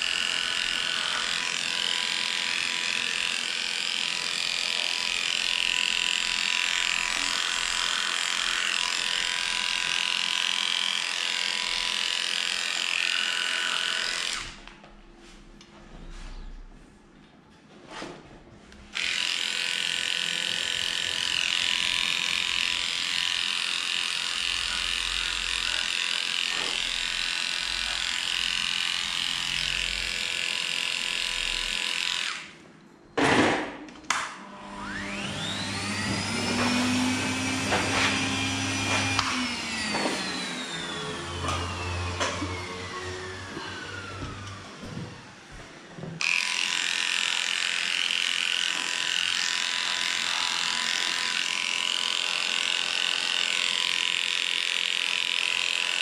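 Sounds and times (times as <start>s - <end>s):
electric clippers running: 0.0s - 14.8s, 18.9s - 32.5s, 34.4s - 45.0s, 46.2s - 56.0s
motor whine: 34.5s - 45.6s.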